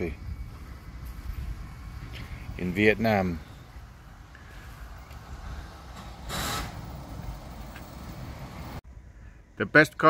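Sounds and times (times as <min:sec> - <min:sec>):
low outdoor rumble: 0:00.0 - 0:09.9.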